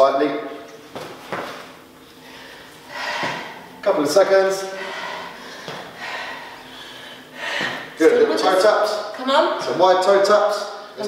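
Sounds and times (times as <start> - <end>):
person breathing hard: 2.2 - 3.8, 4.6 - 8.1.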